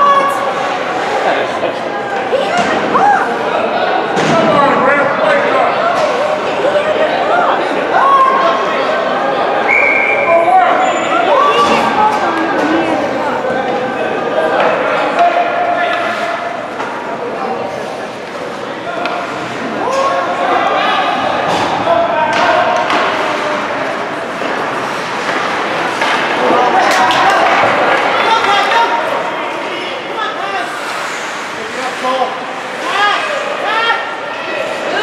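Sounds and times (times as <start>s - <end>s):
echoing voices: 0.0s - 35.0s
hockey sticks and puck knocking: 22.3s - 28.8s.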